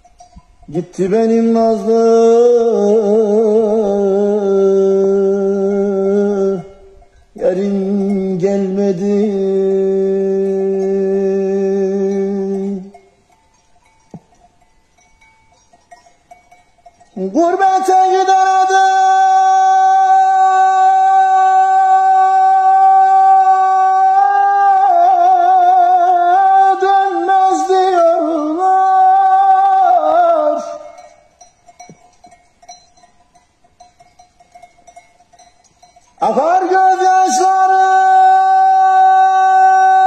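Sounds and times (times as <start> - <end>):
distant sheep bells tinkling: 0.0 - 40.0.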